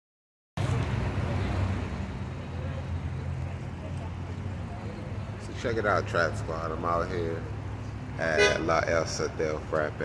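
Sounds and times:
road traffic rumble: 0.6 - 10.0.

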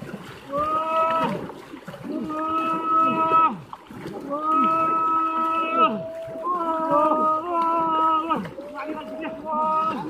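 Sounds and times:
splashing through water: 0.0 - 10.0
men shouting: 4.3 - 10.0.

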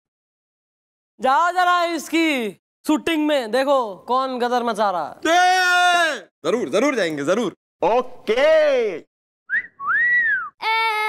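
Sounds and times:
wolf whistle: 9.5 - 10.6.

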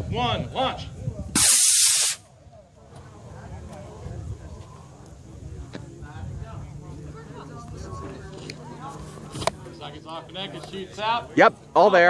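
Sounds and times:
rocket motor hiss: 1.4 - 2.2.

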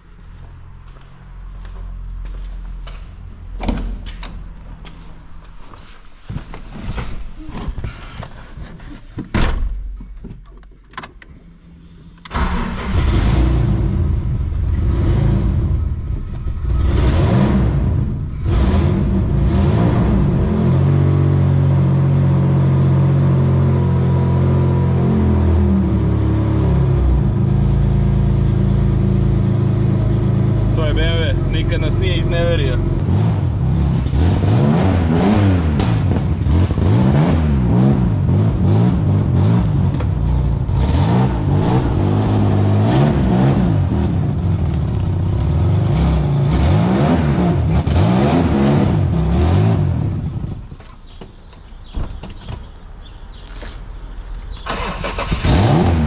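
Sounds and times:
car engine revving and idling: 11.7 - 51.2, 54.6 - 56.0.

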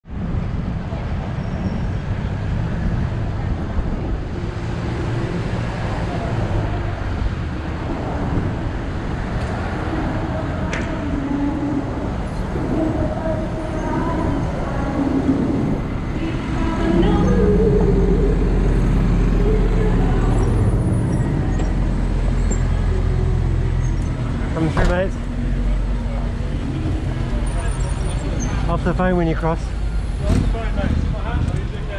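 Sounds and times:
city street traffic: 0.0 - 31.9
bus engine running: 0.1 - 31.9.

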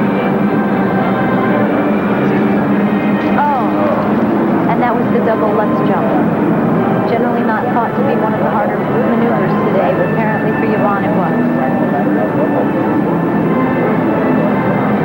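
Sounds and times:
crowd calling and shouting: 0.0 - 15.0.

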